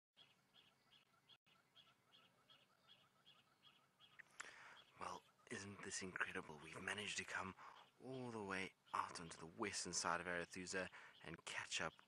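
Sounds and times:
bird chirping: 0:00.2 - 0:12.0.

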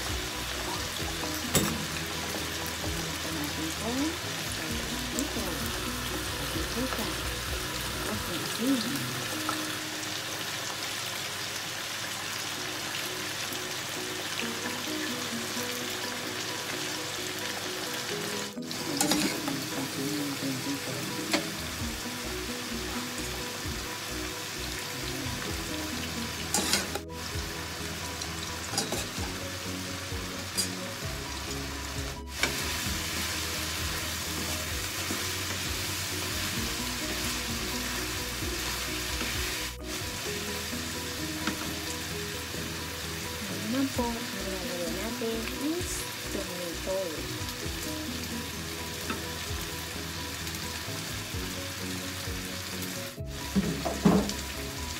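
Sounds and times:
food frying in a pan: 0:00.0 - 0:54.9
wooden spatula knocking on pan: 0:53.6 - 0:54.4.

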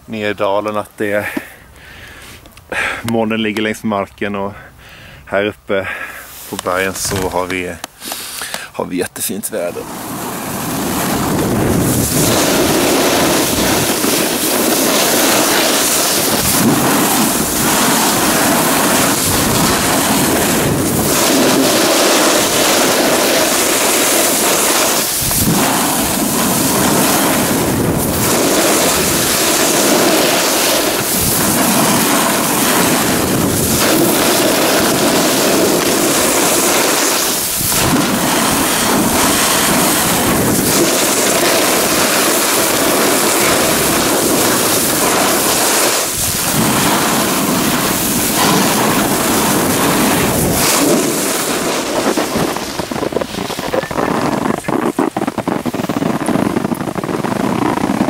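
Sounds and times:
skis scraping on snow: 0:06.3 - 0:08.6, 0:09.6 - 0:58.0
wind rushing over microphone: 0:09.5 - 0:58.0.

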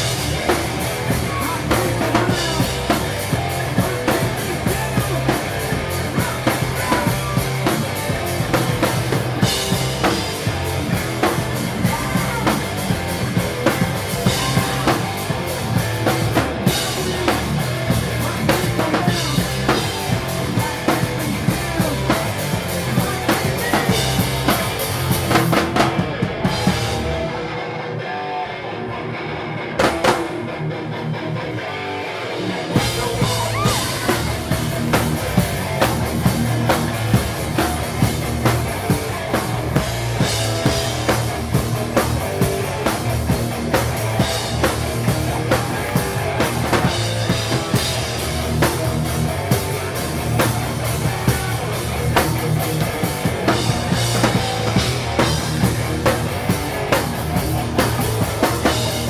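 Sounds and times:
distorted electric guitar: 0:00.0 - 0:59.0
punk band playing loud: 0:00.0 - 0:59.0.

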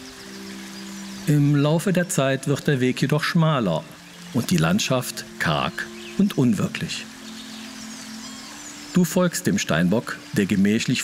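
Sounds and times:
soft background music drone: 0:00.0 - 0:11.0.

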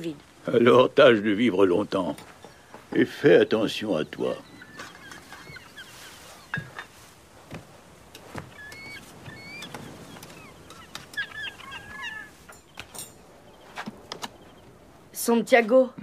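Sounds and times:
birds chirping and whistling: 0:02.2 - 0:07.1, 0:08.2 - 0:14.8
soft knocks: 0:06.4 - 0:11.2.

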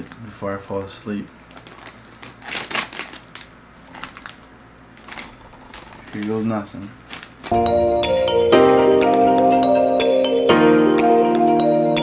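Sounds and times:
plastic chip bag crinkling: 0:00.0 - 0:07.6.

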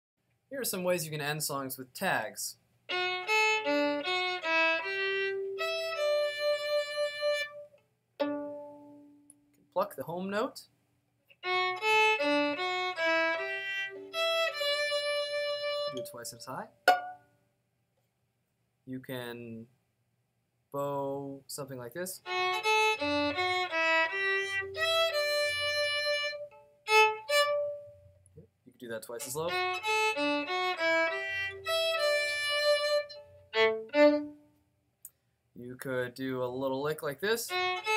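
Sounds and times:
violin melody: 0:02.9 - 0:09.1, 0:11.4 - 0:16.2, 0:22.2 - 0:28.1, 0:29.1 - 0:34.5, 0:37.4 - 0:37.9.

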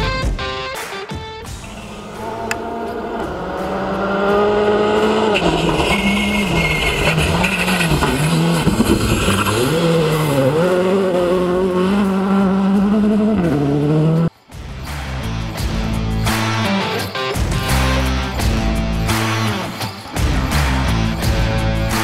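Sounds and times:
rally car engine revving: 0:01.6 - 0:14.3.

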